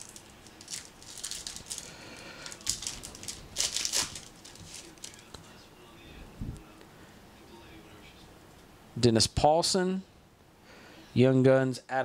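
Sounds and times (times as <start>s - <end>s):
wrapper tearing and crinkling: 0.0s - 5.2s.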